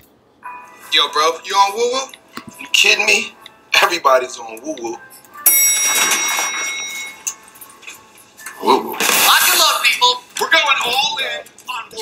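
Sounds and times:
elevator chime ding: 0:05.4 - 0:07.4.

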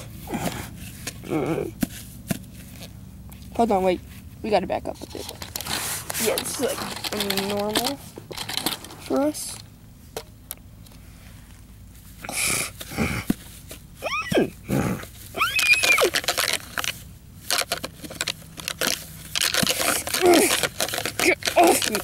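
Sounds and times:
rustling of dry grass: 0:00.0 - 0:09.6
person making horse whinnies: 0:14.0 - 0:16.3.

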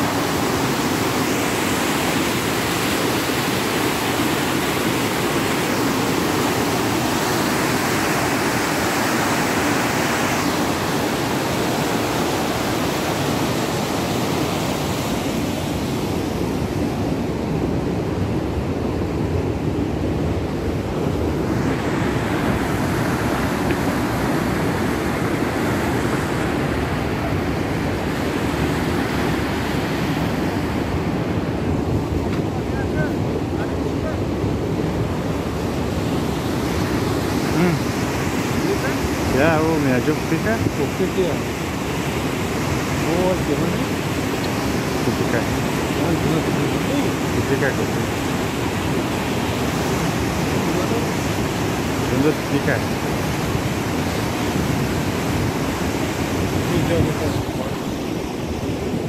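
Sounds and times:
turbulent water rushing in canal: 0:00.0 - 0:59.0.

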